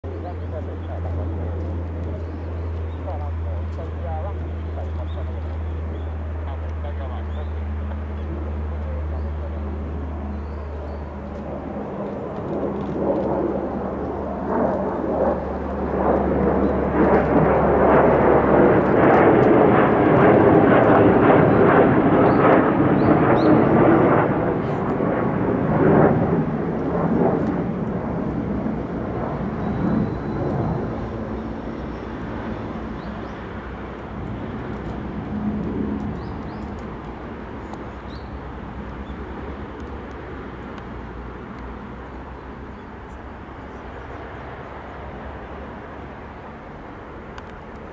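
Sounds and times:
jet fighter passing overhead: 0.1 - 47.9.

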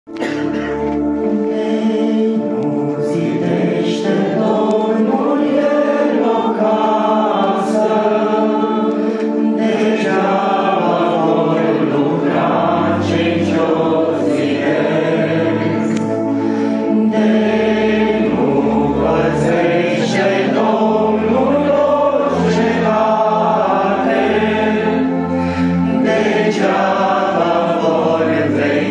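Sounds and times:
electronic keyboard chords: 0.1 - 28.9
piano accordion chords: 0.1 - 28.9
congregation singing a hymn: 0.2 - 28.9.

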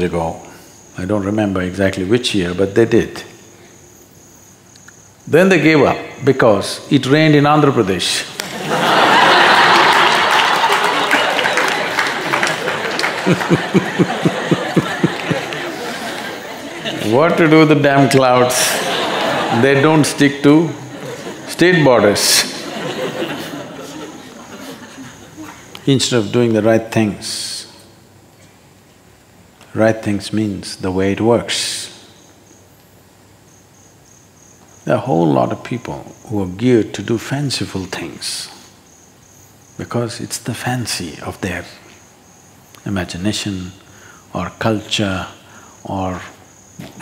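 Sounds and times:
man speaking: 0.0 - 3.4, 5.3 - 8.4, 16.9 - 22.7, 25.8 - 27.8, 29.7 - 32.0, 34.9 - 38.6, 42.8 - 46.4
cricket chirping: 0.0 - 47.0
audience applauding: 8.4 - 20.0
audience laughter: 8.4 - 25.8.

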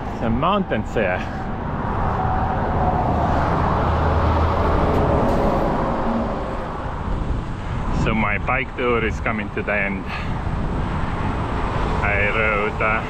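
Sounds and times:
vehicle passing rumble: 0.0 - 13.0.

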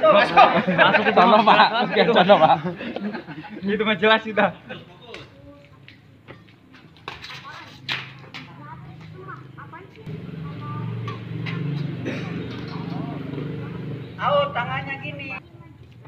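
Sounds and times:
spectators chattering: 0.0 - 6.7, 8.1 - 15.8.

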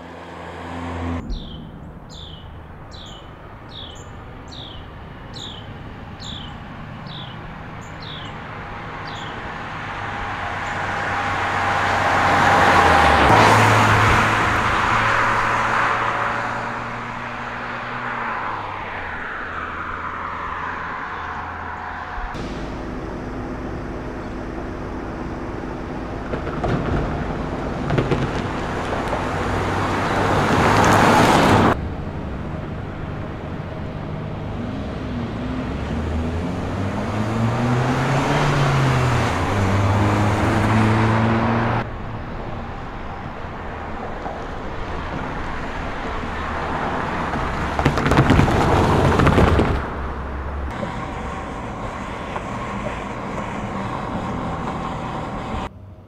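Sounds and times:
car accelerating past: 34.4 - 41.9.

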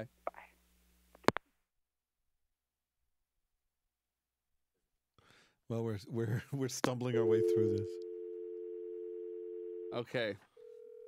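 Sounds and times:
telephone dial tone: 7.2 - 10.0, 10.6 - 11.0.

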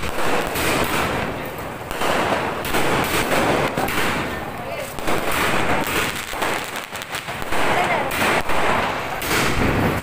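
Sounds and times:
crackle of firework sparks: 0.0 - 10.0
firework bang: 5.0 - 10.0.

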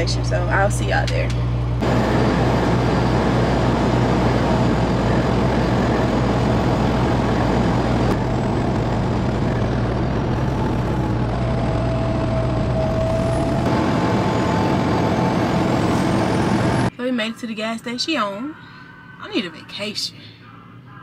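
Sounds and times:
diesel engine drone: 0.0 - 16.9
road and wind noise: 1.4 - 16.9.

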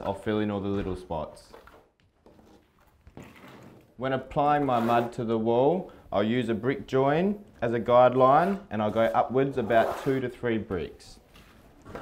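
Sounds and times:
trowel scraping plaster on wall: 4.4 - 5.4, 8.2 - 10.4.

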